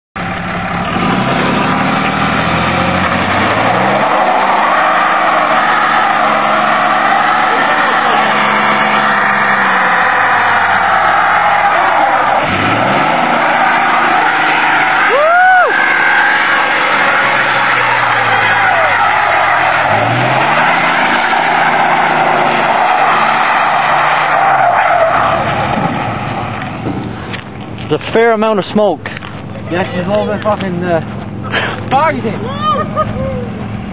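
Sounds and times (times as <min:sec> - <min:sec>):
diesel engine at high revs: 0:00.2 - 0:28.3
tyres spinning on pavement: 0:00.2 - 0:33.9
rising-and-falling squeal: 0:01.8 - 0:26.6.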